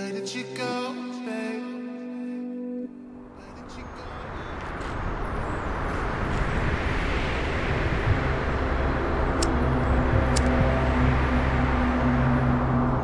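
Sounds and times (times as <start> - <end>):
car engine humming inside cabin: 3.8 - 13.0.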